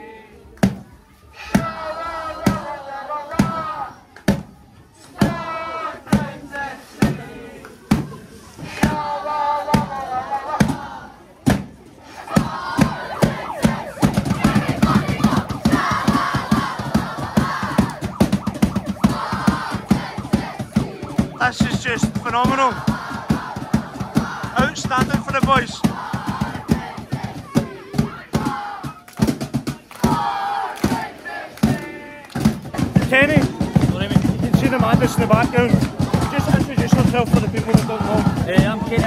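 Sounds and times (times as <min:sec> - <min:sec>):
fans chanting: 0:01.3 - 0:04.0, 0:05.1 - 0:11.3, 0:12.0 - 0:29.0, 0:29.7 - 0:39.0
marching drum beaten with sticks: 0:12.3 - 0:39.0.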